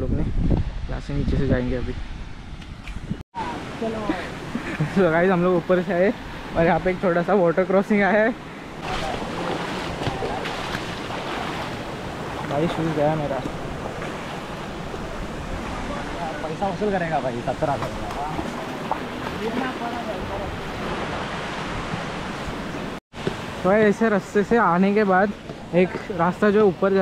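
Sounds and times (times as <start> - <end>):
rushing water: 3.4 - 27.0
footsteps splashing in water: 8.8 - 12.8.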